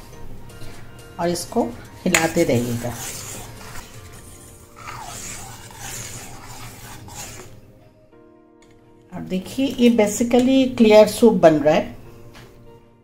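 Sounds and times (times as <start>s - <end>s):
quiet background music: 0.0s - 13.0s
ladle stirring soup in a pan: 2.2s - 7.6s.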